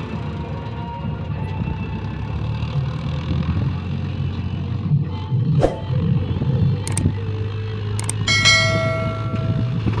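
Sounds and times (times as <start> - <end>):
diesel tractor engine running: 0.0 - 10.0
mouse clicks: 6.9 - 7.1
bright chime ringing: 8.1 - 10.0.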